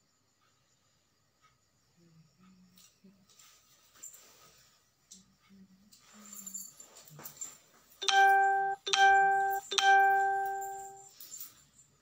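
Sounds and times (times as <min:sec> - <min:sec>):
ringing chime tones: 0:08.0 - 0:11.1.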